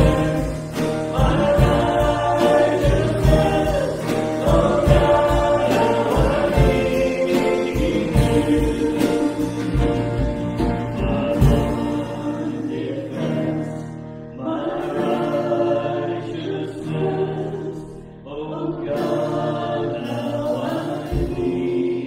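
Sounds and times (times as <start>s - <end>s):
acoustic guitar: 0.0s - 22.0s
keyboard accompaniment: 0.0s - 22.0s
man and woman singing: 0.0s - 22.0s.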